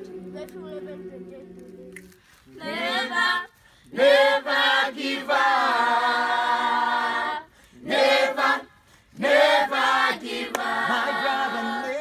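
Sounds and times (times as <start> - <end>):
choir singing unaccompanied: 0.0 - 12.0.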